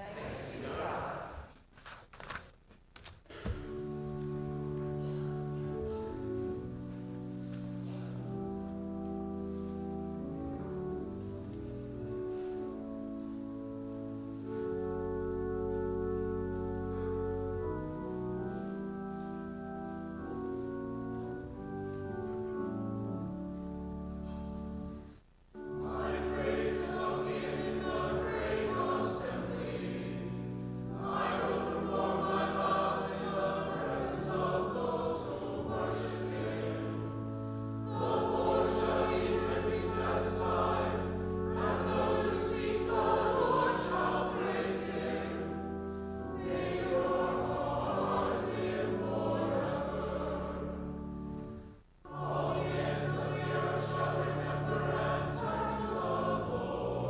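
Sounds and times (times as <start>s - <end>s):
church choir singing a psalm: 0.0s - 1.6s, 3.3s - 57.0s
organ notes: 3.3s - 57.0s.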